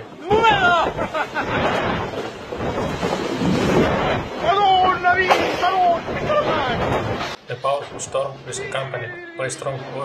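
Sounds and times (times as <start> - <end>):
storm wind rushing: 0.0 - 9.2.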